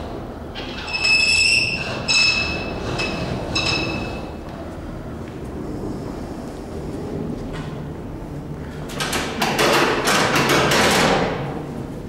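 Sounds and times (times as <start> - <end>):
loud noisy clatter: 8.8 - 11.7.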